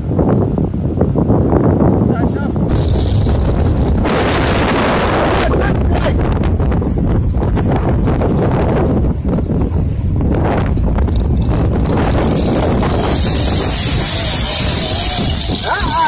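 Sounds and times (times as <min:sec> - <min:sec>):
gusty crackles: 0:00.0 - 0:16.0
wind buffeting microphone: 0:00.0 - 0:16.0.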